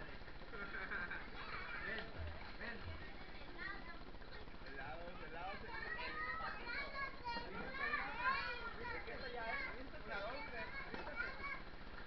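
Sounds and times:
people and children talking: 0.8s - 12.0s.

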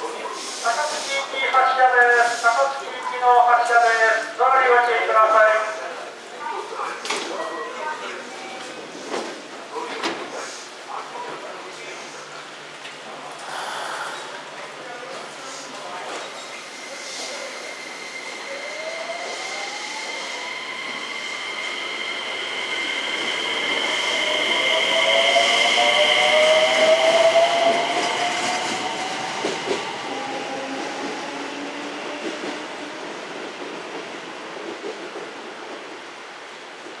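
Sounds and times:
train wheels clicking on rails: 25.6s - 31.4s.

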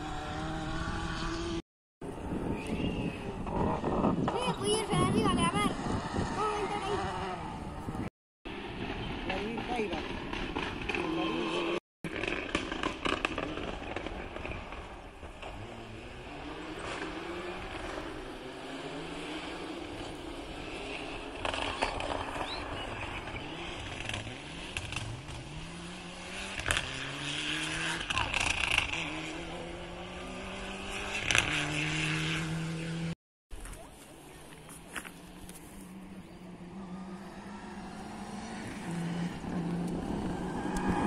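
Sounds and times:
rally car engine revving: 0.0s - 1.6s, 2.5s - 33.2s, 34.7s - 41.0s.

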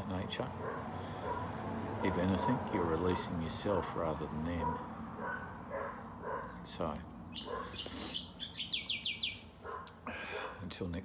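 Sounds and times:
birds chirping: 0.0s - 2.2s, 4.2s - 10.7s.

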